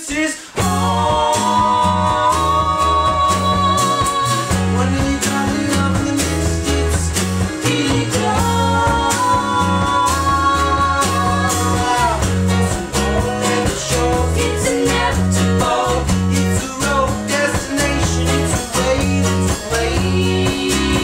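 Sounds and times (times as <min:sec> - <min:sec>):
drum kit beat: 0:00.0 - 0:21.0
voices singing: 0:00.0 - 0:21.0
bass guitar: 0:00.4 - 0:21.0
electric guitar: 0:00.4 - 0:21.0
acoustic guitars strumming: 0:00.5 - 0:21.0
keyboard: 0:00.6 - 0:21.0.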